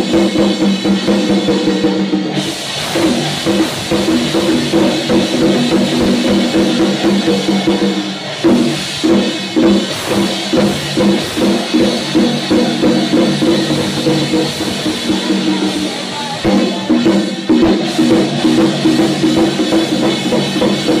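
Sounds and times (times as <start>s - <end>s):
drum steady beat: 0.0s - 21.0s
gongs and cymbals ringing: 0.0s - 21.0s.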